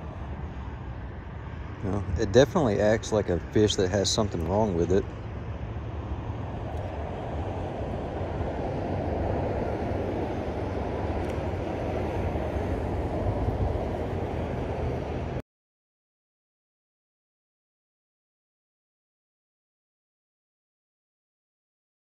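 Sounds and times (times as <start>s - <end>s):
wind blowing on microphone: 0.0s - 15.4s.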